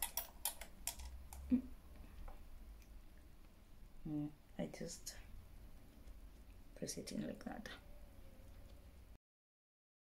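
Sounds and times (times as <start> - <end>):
makeup items clicking and tapping: 0.0 - 2.9
person humming: 1.4 - 1.8, 4.0 - 4.4.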